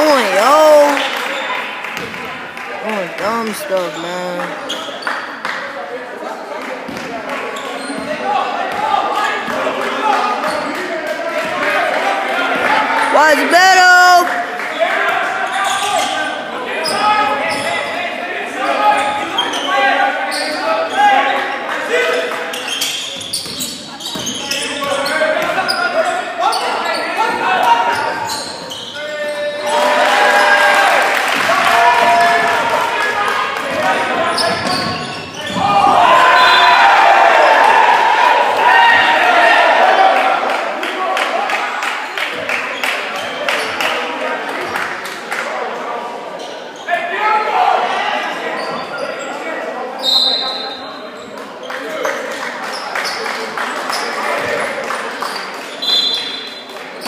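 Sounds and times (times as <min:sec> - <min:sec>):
spectators' voices echoing: 0:00.0 - 0:22.6.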